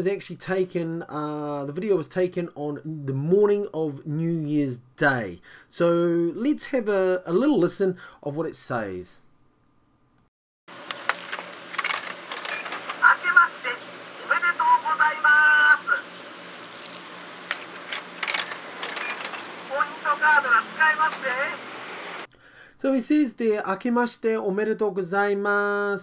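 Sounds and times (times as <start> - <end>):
machine hum: 10.7 - 22.3
button and coin mechanism clicks: 10.8 - 13.1, 16.8 - 19.8
vending machine recorded voice: 12.5 - 16.1, 19.1 - 21.7.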